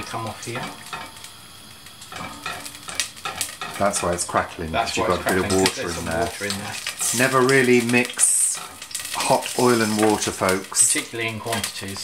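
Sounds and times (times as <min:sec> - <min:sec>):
oil crackling and sizzling in a pan: 0:00.0 - 0:12.0
spatula stirring: 0:00.0 - 0:12.0.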